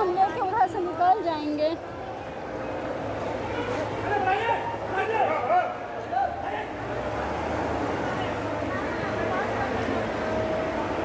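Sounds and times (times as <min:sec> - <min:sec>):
bus engine running: 0:05.8 - 0:11.0.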